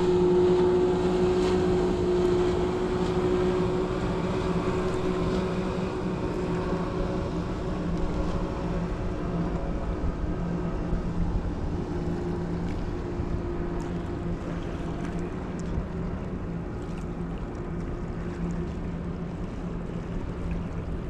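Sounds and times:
outboard motorboat engine droning: 0.0s - 21.0s.

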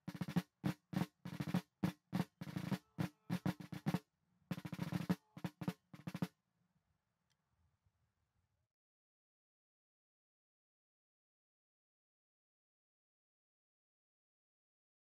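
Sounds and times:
snare drums marching cadence: 0.0s - 6.3s.

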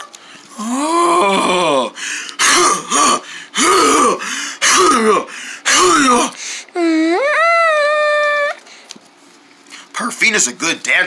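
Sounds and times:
person making wordless vocal sounds: 0.5s - 2.0s, 4.9s - 8.6s.

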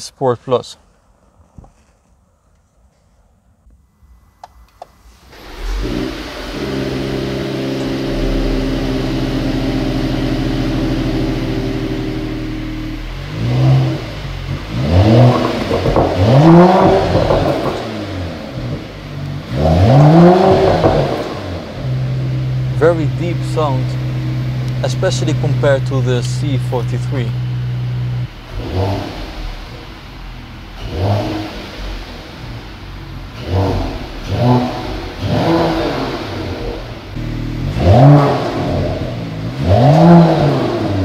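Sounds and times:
car engine starting and idling: 3.9s - 41.0s
car engine revving: 5.0s - 41.0s.

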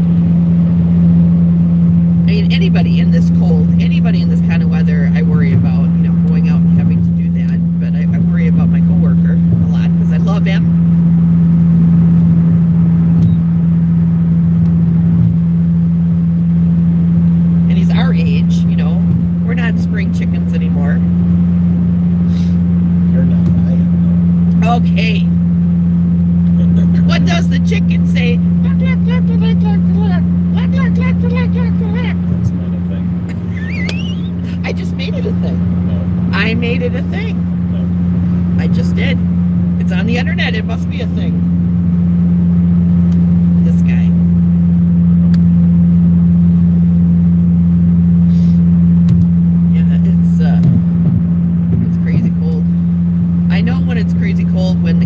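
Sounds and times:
car cabin hum: 0.0s - 55.0s
people talking: 2.3s - 10.7s, 17.7s - 21.1s, 23.1s - 25.4s, 26.5s - 37.9s, 38.6s - 39.2s, 39.8s - 41.4s, 43.6s - 44.2s, 49.7s - 50.8s, 51.8s - 52.7s, 53.5s - 55.0s.

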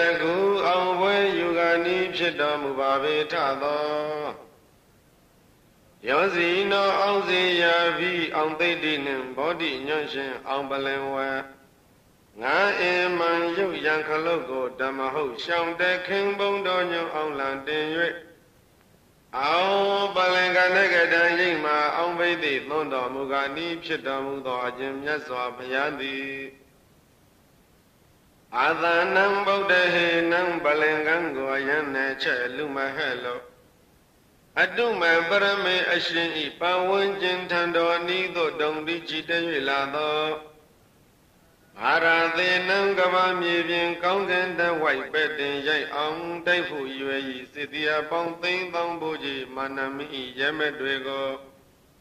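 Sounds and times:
man chanting: 0.0s - 4.5s, 6.0s - 11.6s, 12.4s - 18.4s, 19.3s - 26.6s, 28.5s - 33.6s, 34.6s - 40.6s, 41.8s - 51.6s.

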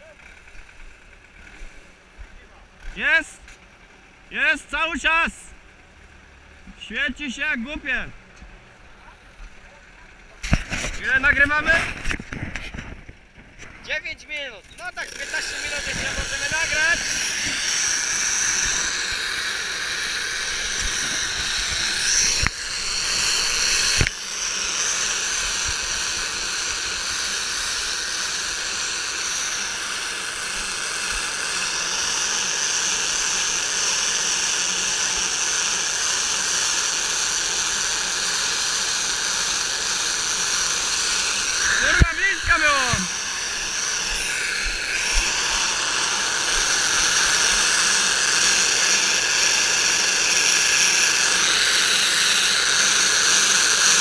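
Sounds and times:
bale wrapper hissing: 14.9s - 54.0s.

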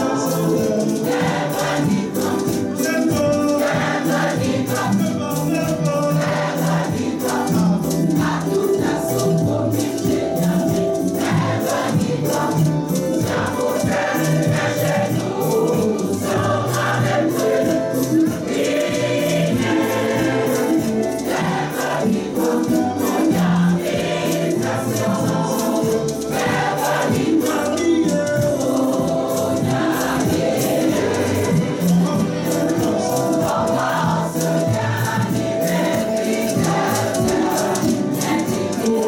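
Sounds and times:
choir singing gospel song: 0.0s - 39.0s
rhythmic hand clapping: 0.0s - 39.0s.

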